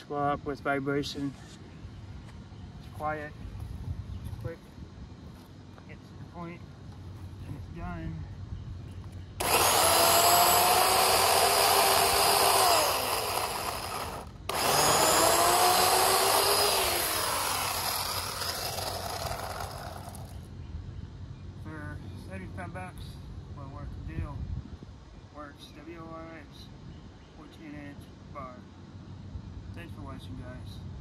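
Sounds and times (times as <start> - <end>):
electric chainsaw whine: 9.4 - 20.5.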